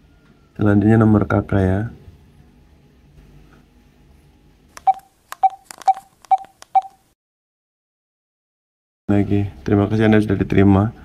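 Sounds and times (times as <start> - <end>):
phone keypad beeps: 4.8 - 7.0.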